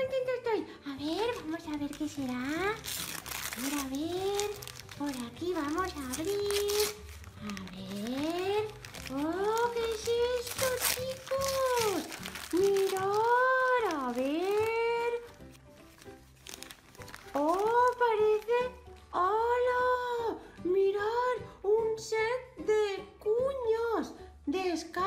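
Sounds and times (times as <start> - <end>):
wrapping paper crinkling and tearing: 1.1 - 19.4.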